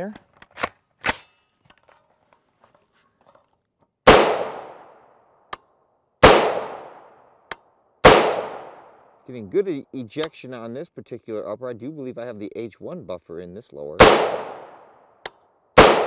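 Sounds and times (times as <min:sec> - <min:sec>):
rifle shots with echo: 0:04.1 - 0:05.0, 0:06.2 - 0:07.2, 0:08.0 - 0:09.0, 0:14.0 - 0:15.0, 0:15.8 - 0:16.0.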